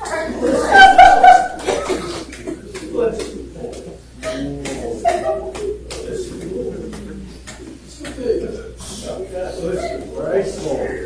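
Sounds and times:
people speaking quietly: 0.0s - 11.0s.

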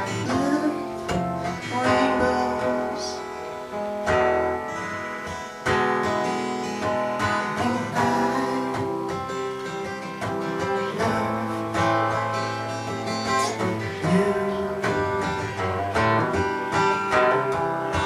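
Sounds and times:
acoustic guitar strummed and picked: 0.0s - 18.0s.

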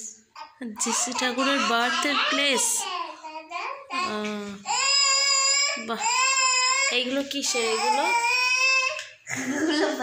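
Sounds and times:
baby crying: 0.3s - 9.2s.

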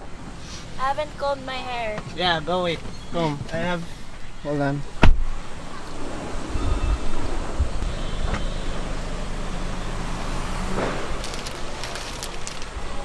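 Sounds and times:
street traffic: 0.0s - 13.0s.

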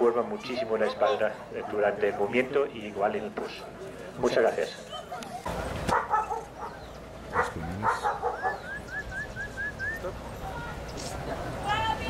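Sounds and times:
dog barking: 0.6s - 2.5s, 4.9s - 8.8s.

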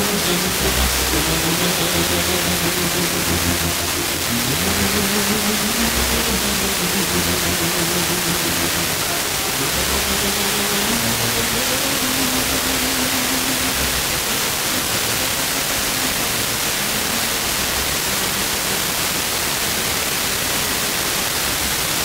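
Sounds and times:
faint radio music: 0.0s - 22.0s
radio static hiss: 0.0s - 22.0s.

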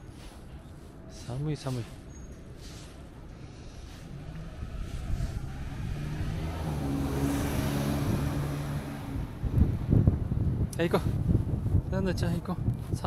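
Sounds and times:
vehicle engine hum: 2.3s - 11.8s
wind buffeting microphone: 4.0s - 13.0s.

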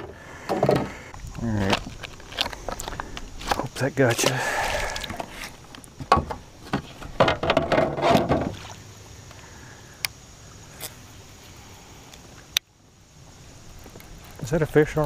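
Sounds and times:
low steady background noise: 0.0s - 15.0s
knocks and rattles on plastic kayak: 6.0s - 8.7s.

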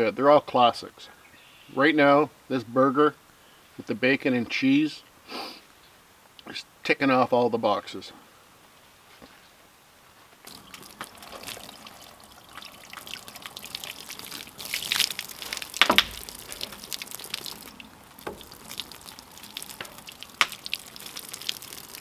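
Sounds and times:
water trickling and splashing: 10.5s - 22.0s.

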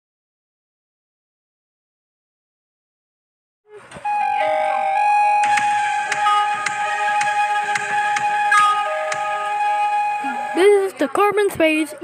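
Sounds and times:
news theme music: 3.8s - 10.9s.

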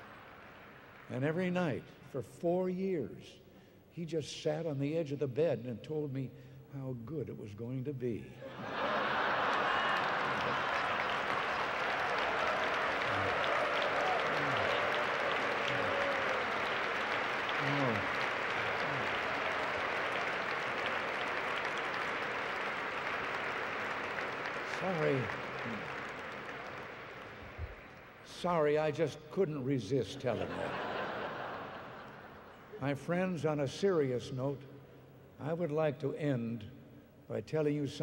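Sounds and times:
audience applauding: 0.0s - 1.1s, 8.5s - 28.2s
voices shouting over clapping: 9.6s - 23.2s.

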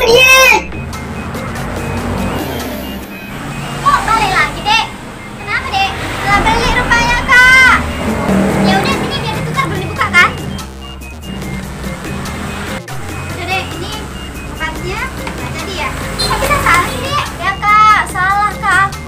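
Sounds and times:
background music: 0.0s - 19.0s
high-pitched voices calling: 0.0s - 19.0s.

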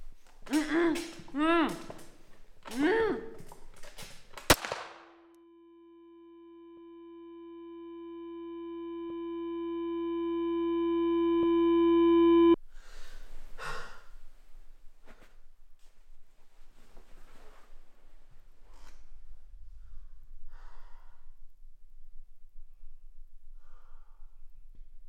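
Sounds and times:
sharp crack: 4.0s - 5.2s
high ringing tone: 5.4s - 12.6s.

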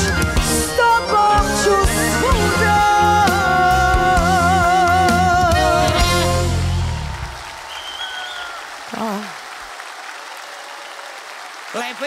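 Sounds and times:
audience applauding: 6.0s - 12.0s.

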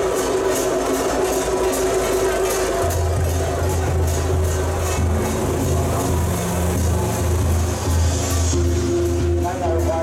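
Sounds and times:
loud bass-heavy music on loudspeakers: 2.8s - 10.0s.

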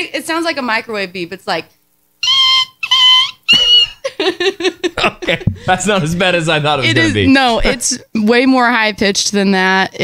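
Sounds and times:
woman imitating high beeps: 2.2s - 4.0s.

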